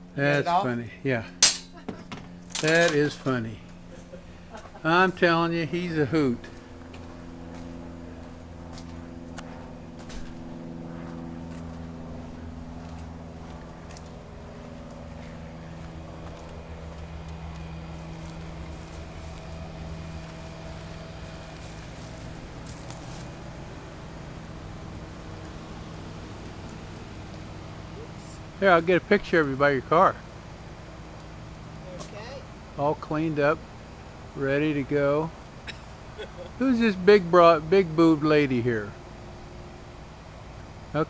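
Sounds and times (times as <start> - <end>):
car engine idling: 0.0 - 41.0.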